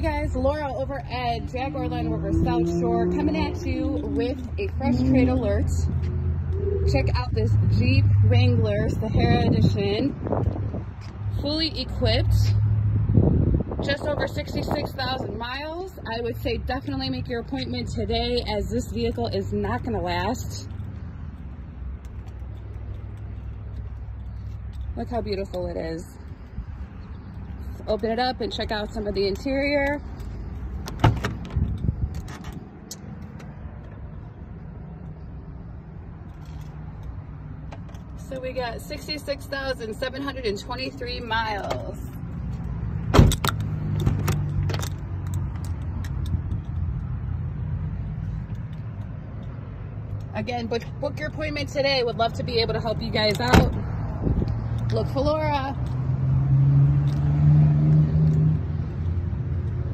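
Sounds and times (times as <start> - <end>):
vehicle engine humming: 0.0 - 59.9.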